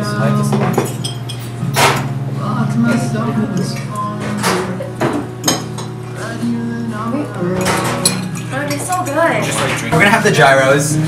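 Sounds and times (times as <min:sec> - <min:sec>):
background music: 0:00.0 - 0:11.0
cutlery clinking against plates: 0:00.5 - 0:02.1, 0:03.6 - 0:06.2, 0:07.5 - 0:10.1.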